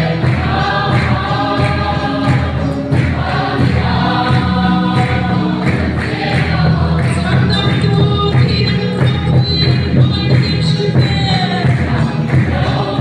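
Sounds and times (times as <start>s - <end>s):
congregation singing a hymn: 0.0s - 13.0s
drum beat: 0.0s - 13.0s
hands clapping in time: 0.0s - 13.0s
keyboard: 0.0s - 13.0s.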